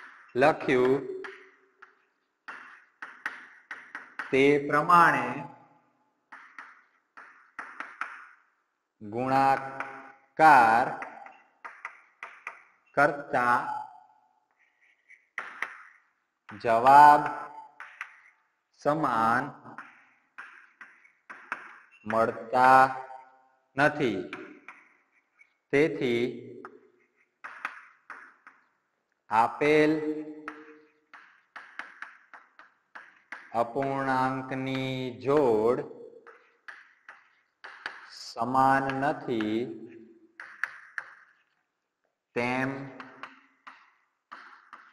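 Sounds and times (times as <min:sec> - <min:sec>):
chalk scratching on chalkboard: 0:14.5 - 0:15.6.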